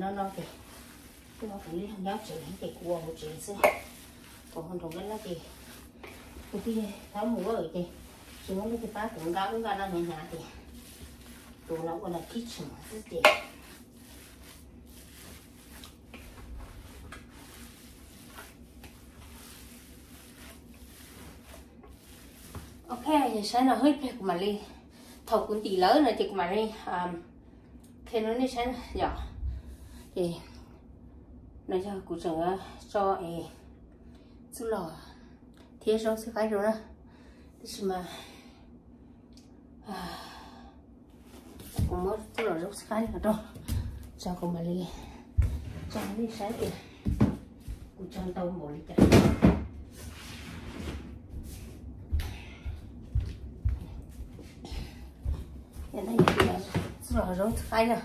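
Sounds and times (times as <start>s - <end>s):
woman talking: 0.0s - 0.6s, 1.4s - 5.7s, 6.5s - 10.6s, 11.6s - 13.5s, 22.9s - 27.3s, 28.0s - 29.4s, 30.2s - 30.6s, 31.7s - 33.6s, 34.6s - 35.2s, 35.8s - 36.9s, 37.6s - 38.2s, 41.8s - 43.6s, 44.2s - 45.2s, 45.8s - 47.0s, 48.0s - 49.4s, 55.9s - 58.0s
woman's voice: 0.0s - 0.6s, 1.4s - 5.6s, 6.5s - 10.7s, 11.6s - 13.5s, 22.9s - 27.3s, 28.0s - 29.4s, 30.1s - 30.7s, 31.7s - 33.7s, 34.6s - 35.2s, 35.8s - 36.9s, 37.6s - 38.3s, 41.8s - 47.0s, 48.0s - 49.4s, 55.8s - 58.0s.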